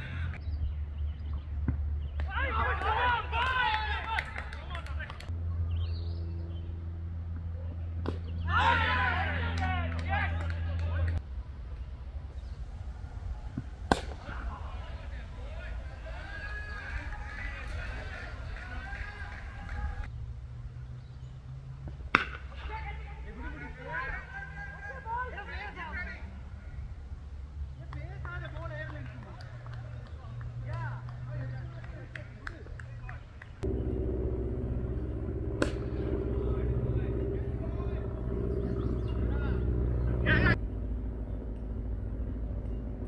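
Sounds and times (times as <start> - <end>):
people talking and calling out: 12.7 - 20.1, 22.2 - 40.6
cricket bat striking ball: 13.5 - 14.5, 22.1 - 22.6, 35.6 - 36.2
low rumble: 33.3 - 43.0.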